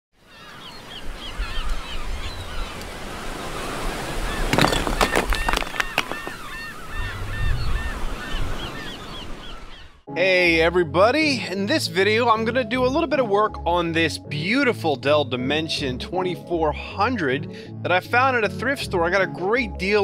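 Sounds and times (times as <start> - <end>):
birds calling: 0.2 - 10.1
surf washing: 1.0 - 9.4.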